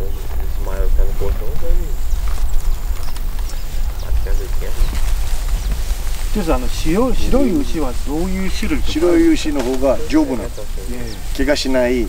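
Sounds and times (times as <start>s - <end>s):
low rumble: 0.0s - 11.3s.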